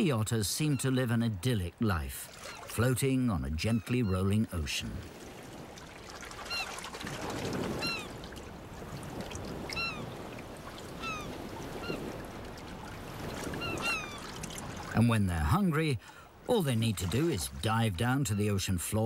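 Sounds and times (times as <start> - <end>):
ocean water lapping: 0.0 - 19.0.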